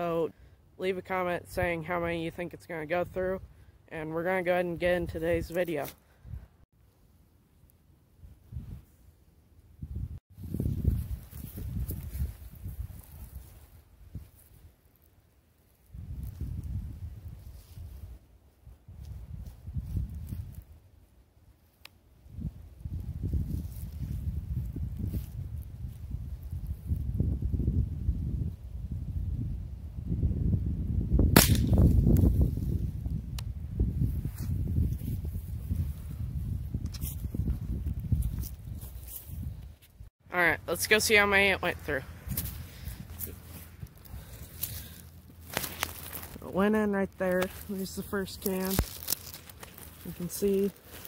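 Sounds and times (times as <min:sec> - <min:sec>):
rifle shot: 0:31.3 - 0:31.9.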